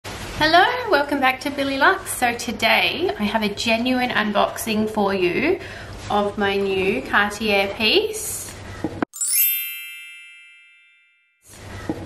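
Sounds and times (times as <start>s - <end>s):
shimmering bell chime: 9.2s - 11.5s.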